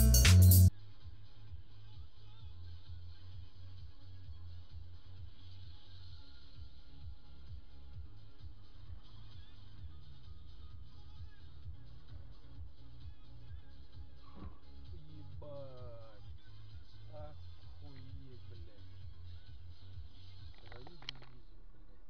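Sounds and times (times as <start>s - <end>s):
faint music: 0.0s - 22.0s.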